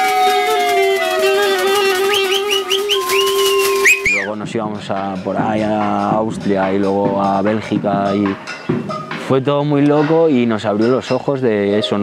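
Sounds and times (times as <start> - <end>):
whistling through cupped hands: 0.0 - 4.4.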